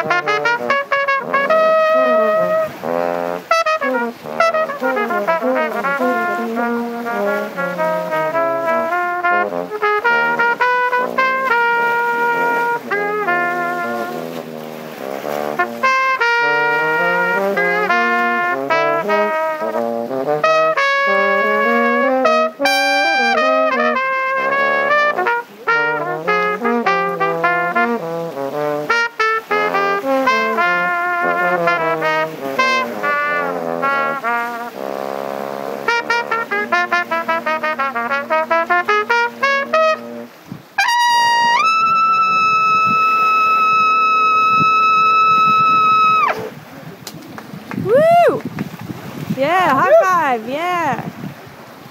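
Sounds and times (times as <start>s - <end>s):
french horn playing: 0.0s - 47.0s
trumpet playing blues: 0.0s - 48.5s, 49.1s - 51.7s.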